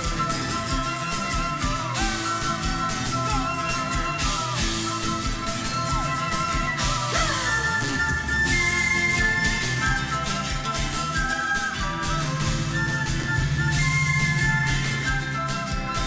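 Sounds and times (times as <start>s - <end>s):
folk band playing: 0.0s - 16.0s.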